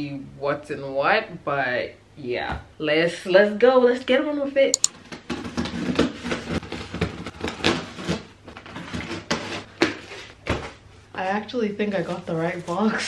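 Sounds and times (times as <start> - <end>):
scrapes and knocks on cardboard: 5.2 - 10.8.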